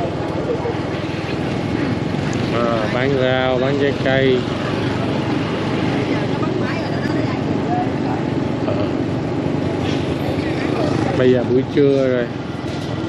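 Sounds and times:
motorbike engine: 0.0 - 13.0
road and wind noise: 0.0 - 13.0
scooters passing: 0.0 - 13.0.

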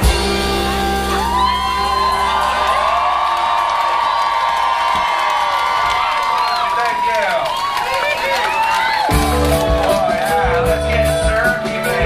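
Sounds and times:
rock band closing chord: 0.0 - 2.8, 9.1 - 12.0
crowd cheering and whooping: 0.4 - 11.2.

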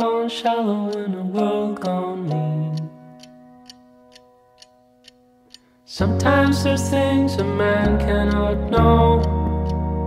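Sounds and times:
steady ticking: 0.0 - 10.0.

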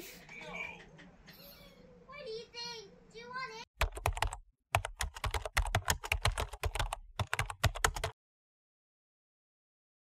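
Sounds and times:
computer keyboard key clicks: 3.8 - 8.1.

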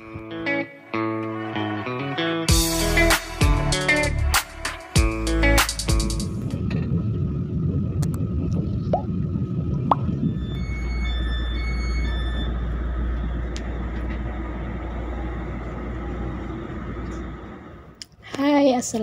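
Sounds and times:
low rumble of train running: 5.0 - 19.0.

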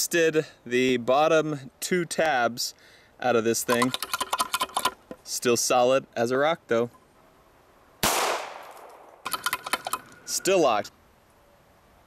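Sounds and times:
metallic clinks and rattles: 3.6 - 5.0, 9.2 - 10.5
pistol shot: 8.0 - 9.2.

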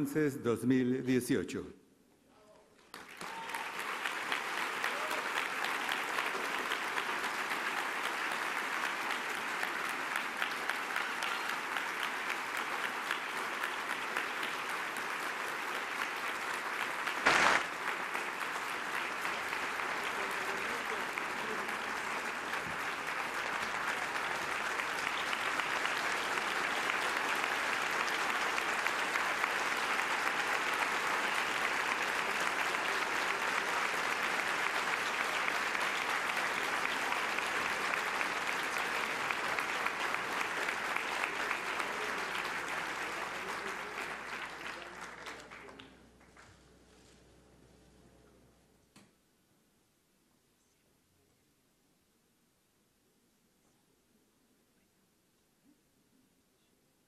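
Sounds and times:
audience applauding: 2.8 - 46.5.

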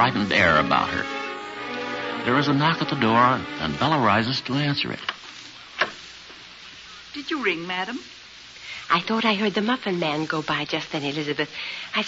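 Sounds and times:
recording hiss and crackle: 0.0 - 12.0.

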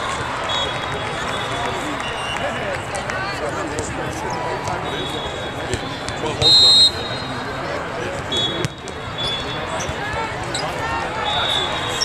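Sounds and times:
chatter of spectators: 0.0 - 12.0.

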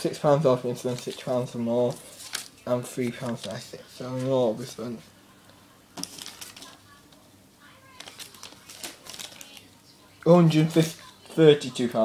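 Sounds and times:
paper receipts rustling: 0.2 - 4.4, 6.0 - 7.0, 7.8 - 11.4.

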